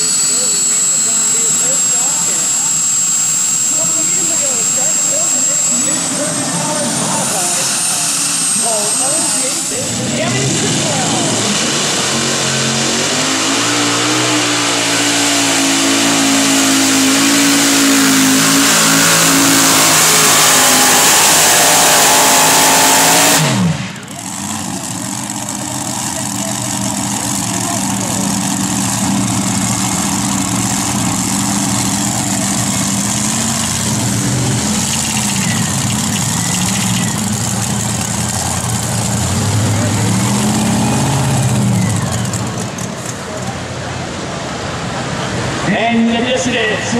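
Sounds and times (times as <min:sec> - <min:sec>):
tractor engines at full throttle: 0:00.0 - 0:46.9.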